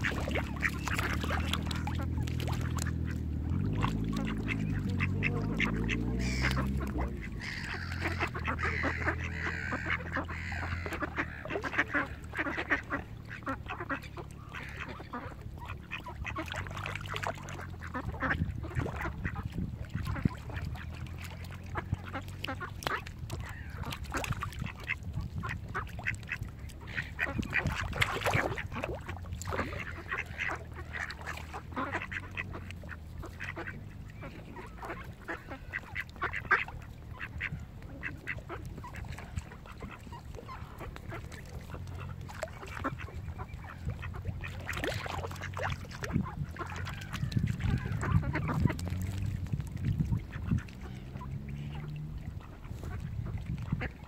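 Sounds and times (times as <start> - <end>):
ducks quacking: 0.0 - 54.0.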